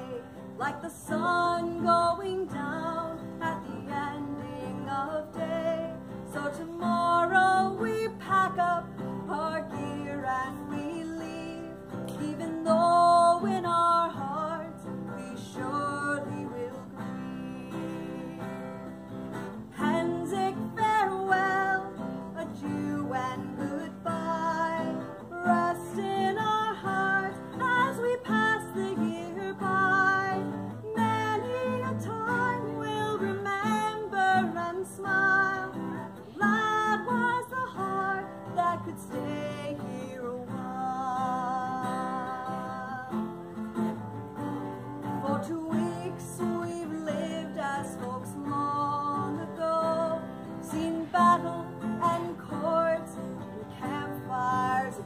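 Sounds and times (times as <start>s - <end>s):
strummed acoustic guitar: 0.0s - 55.0s
woman singing folk song: 0.0s - 55.0s.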